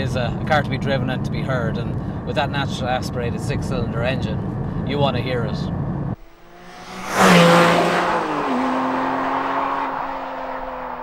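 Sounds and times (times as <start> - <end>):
sports car driving past: 6.2 - 11.0.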